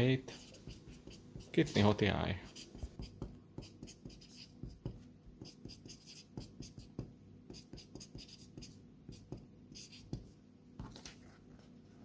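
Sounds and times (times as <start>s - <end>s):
marker writing on paper: 0.3s - 10.4s.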